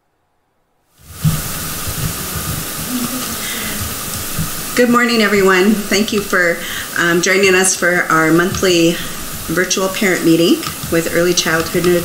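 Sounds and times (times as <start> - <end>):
microphone hiss: 0.0 - 12.0
low thumps: 1.1 - 12.0.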